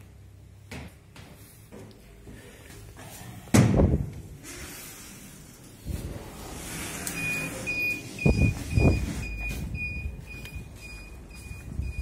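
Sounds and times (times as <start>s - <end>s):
electronic beeper beeping: 7.1s - 12.0s.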